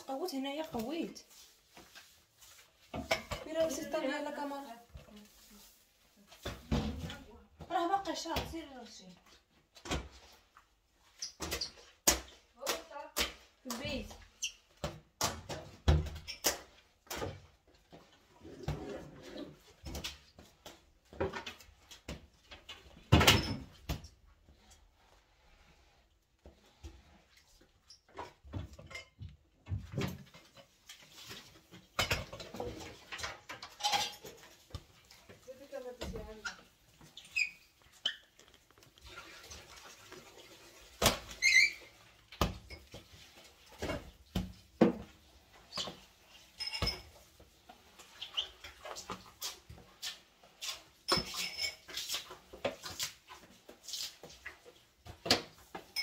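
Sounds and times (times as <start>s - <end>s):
broom sweeping hard floor: 0.0s - 8.8s, 47.1s - 55.9s.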